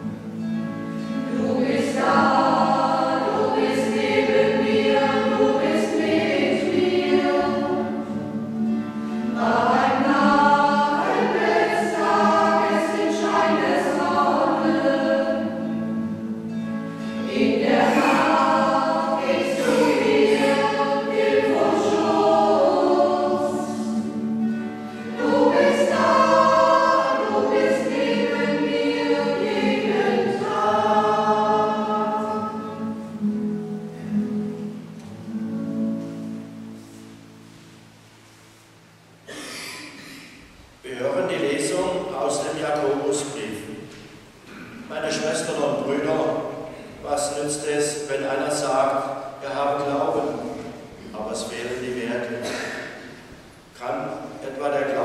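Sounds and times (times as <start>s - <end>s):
choir singing a hymn: 1.0s - 35.4s, 40.9s - 53.2s, 53.8s - 55.0s.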